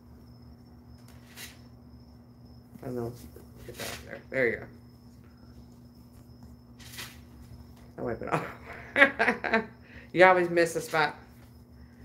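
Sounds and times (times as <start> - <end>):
faint high whine: 0.0 - 12.0
low electrical hum: 0.0 - 12.0.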